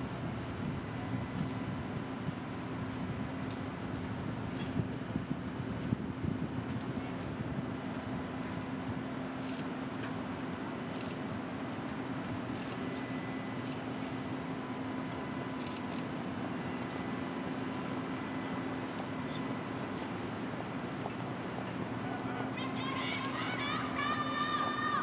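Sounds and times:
constant low hum: 0.0s - 25.0s.

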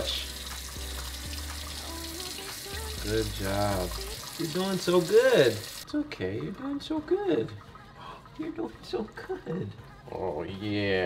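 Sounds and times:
faucet running into a sink: 0.0s - 9.8s
background music: 0.0s - 11.0s.

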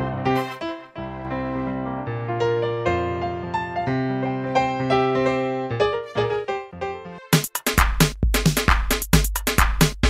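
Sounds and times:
electric piano chords: 0.0s - 7.4s
drums and bass beat: 7.3s - 10.0s.

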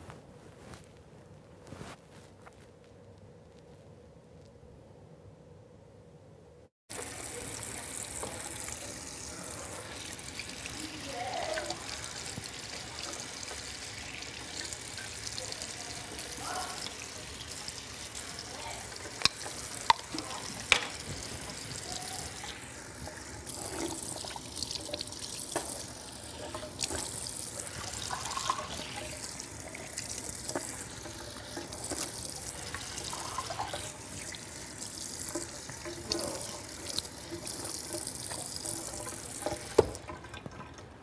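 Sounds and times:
sink tap running: 6.9s - 40.6s.

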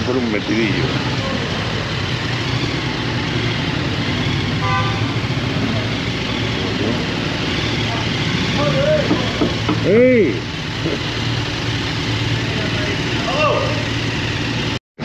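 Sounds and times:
motorcycle engine running: 0.0s - 14.8s.

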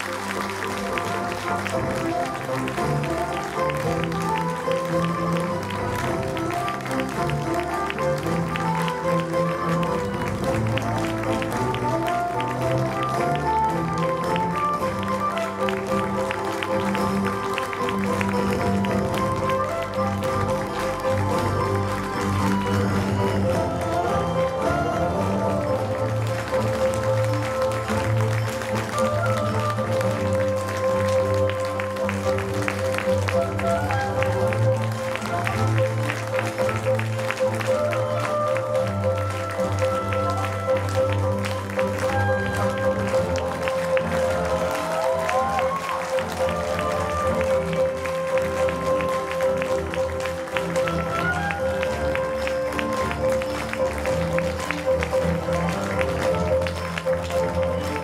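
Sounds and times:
audience applause: 0.0s - 58.0s
music playing: 0.0s - 58.0s.

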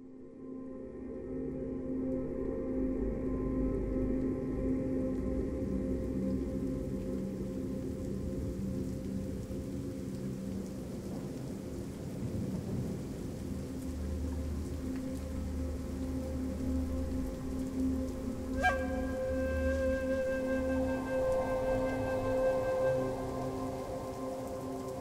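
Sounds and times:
low musical drone: 0.1s - 12.0s, 12.7s - 25.0s
rain: 0.9s - 25.0s.

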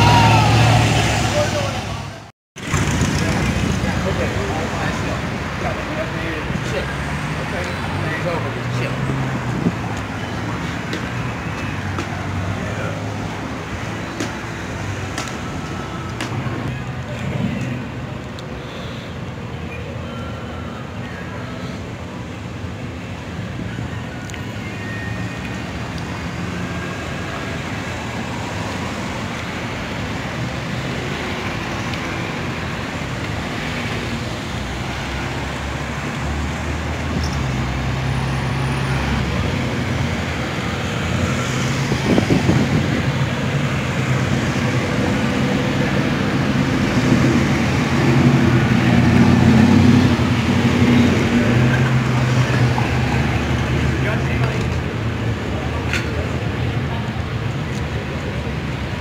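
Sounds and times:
cars driving past: 0.0s - 19.4s, 21.5s - 59.0s.

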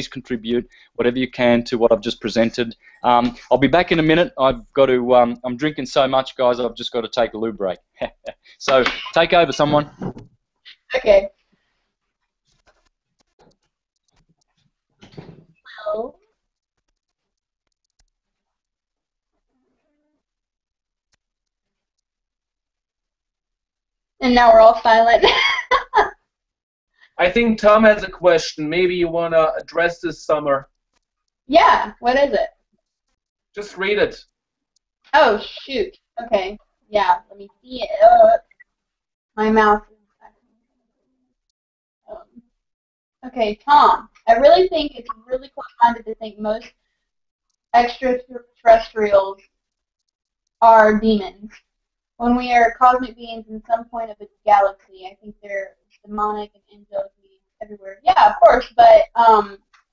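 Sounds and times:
faint clicks: 12.1s - 18.8s, 30.6s - 31.4s, 49.4s - 50.6s.

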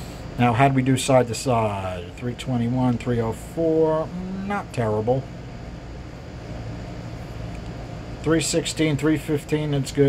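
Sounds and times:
ventilation hum and hiss: 0.0s - 10.0s.

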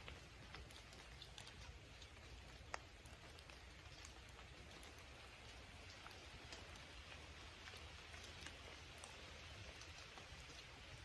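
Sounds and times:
light rain pattering: 0.0s - 11.0s.

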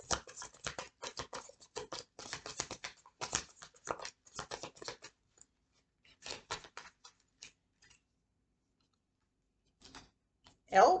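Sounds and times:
faint clicks of cards handled: 0.1s - 8.1s, 8.7s - 10.6s.

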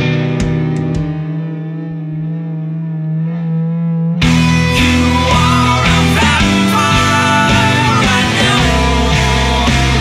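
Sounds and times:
distorted electric guitar chord ringing: 0.0s - 10.0s.

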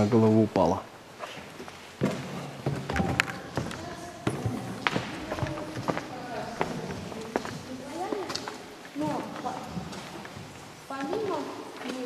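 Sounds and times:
indistinct group talk: 1.0s - 12.0s.

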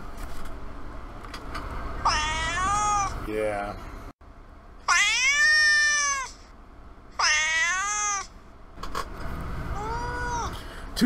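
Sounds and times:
cat meowing: 2.0s - 3.2s, 4.9s - 6.4s, 7.2s - 8.3s, 9.7s - 10.6s.

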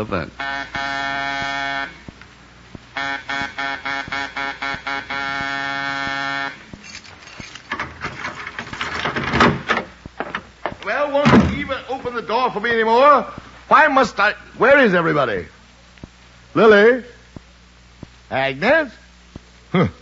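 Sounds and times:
electric doorbell buzzer: 0.4s - 2.0s, 3.0s - 6.6s
man muttering: 19.7s - 20.0s.

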